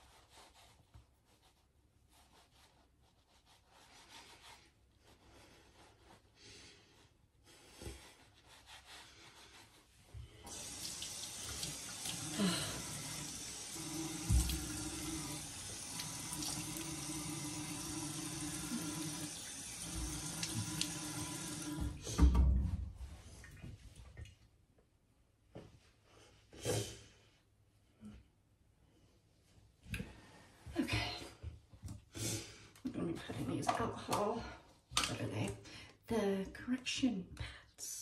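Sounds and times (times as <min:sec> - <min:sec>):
face being rinsed: 0:10.3 - 0:22.0
faucet running into sink: 0:10.5 - 0:22.2
faucet knock: 0:14.2 - 0:14.9.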